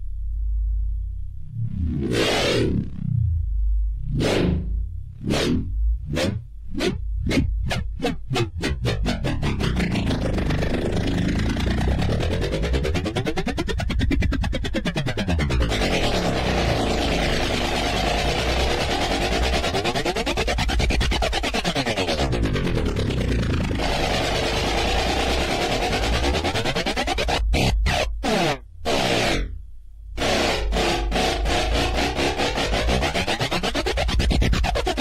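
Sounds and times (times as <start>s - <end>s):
deep bass: 0.0s - 21.3s, 22.0s - 35.0s
bright buzzing synth layer: 1.4s - 6.4s, 15.2s - 20.5s, 22.1s - 29.6s, 30.2s - 33.5s
synth texture: 1.4s - 29.4s
techno music: 7.8s - 29.1s, 30.2s - 35.0s.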